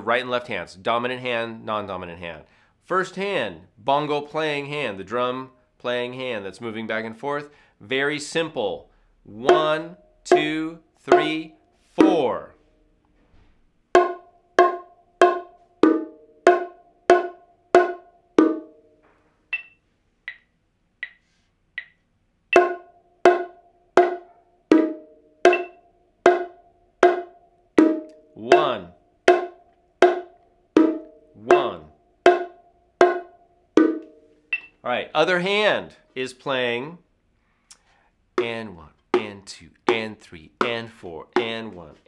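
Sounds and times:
bongos played with bare hands: 14.0 - 18.8, 22.5 - 34.7, 39.2 - 41.8.

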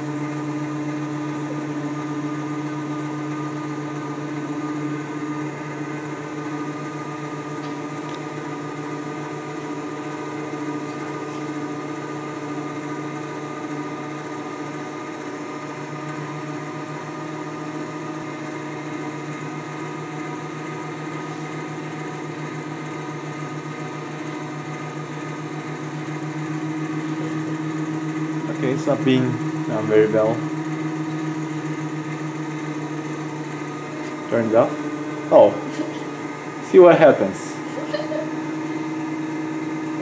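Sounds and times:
generator motor hum: 0.0 - 40.0.

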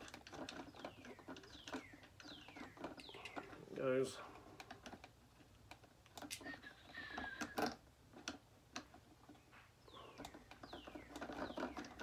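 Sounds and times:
plastic parts clicking: 0.0 - 12.0.

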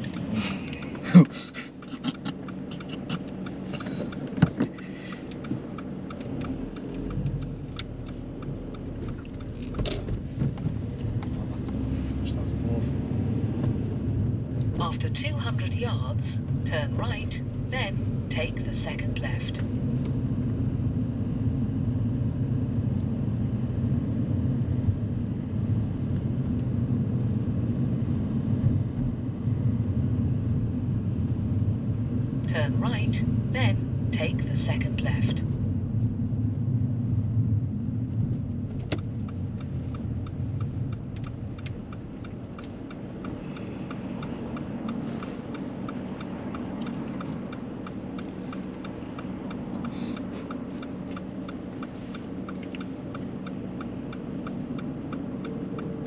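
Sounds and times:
car engine and road rumble: 0.0 - 56.0
turn signal ticking: 0.0 - 56.0
click: 38.8 - 55.9.

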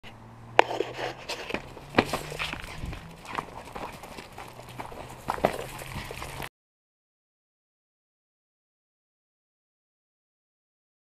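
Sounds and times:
running footsteps on brick: 0.6 - 6.5.

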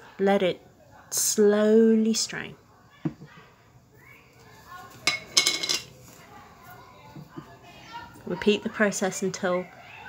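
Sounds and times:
kitchen utensils clinking: 4.9 - 6.0.

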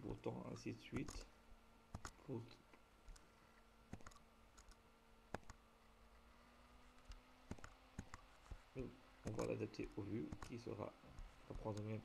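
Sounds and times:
computer mouse clicks: 1.9 - 2.2, 3.0 - 3.3, 3.9 - 5.6, 7.0 - 8.6, 9.2 - 9.6, 10.2 - 10.6, 11.2 - 12.0.

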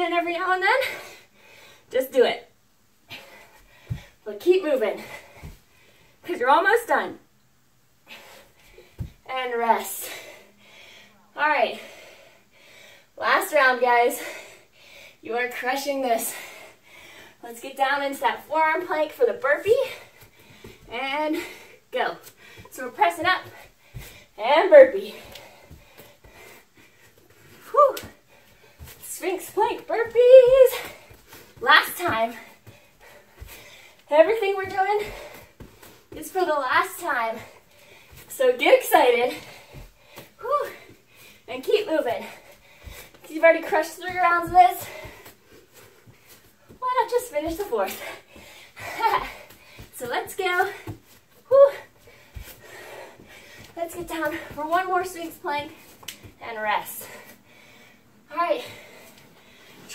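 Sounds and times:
hard breathing: 9.9 - 13.2, 14.0 - 15.3, 16.0 - 17.5, 19.7 - 47.0, 47.6 - 59.9.

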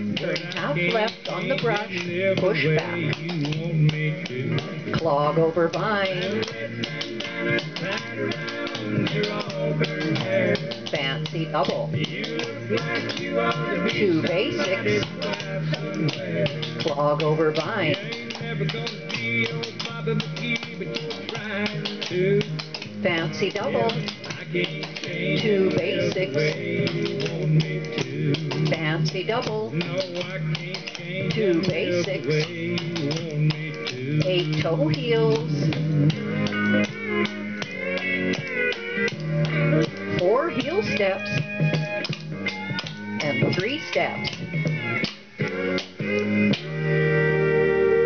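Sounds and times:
string-band tune with guitar: 0.0 - 48.0
tap shoes clicking on board floor: 0.1 - 46.7.

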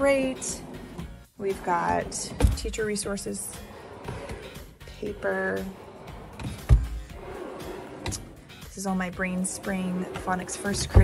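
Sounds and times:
drawer being pulled open: 0.0 - 11.0
drawer sliding shut: 3.6 - 4.8, 5.7 - 8.4, 10.1 - 11.0.

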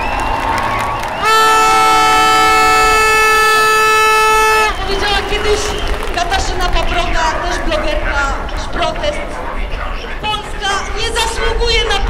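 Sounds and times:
loud steady horn blast: 0.0 - 8.6
large outdoor crowd: 0.0 - 12.0.

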